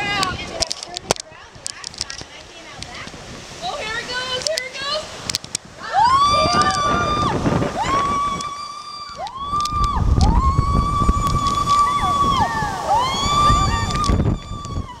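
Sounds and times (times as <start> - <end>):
rushing water: 0.0 - 15.0
people screaming: 5.8 - 15.0.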